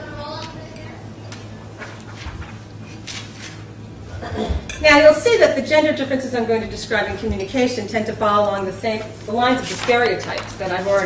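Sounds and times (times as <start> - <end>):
woman speaking: 4.8 - 11.0.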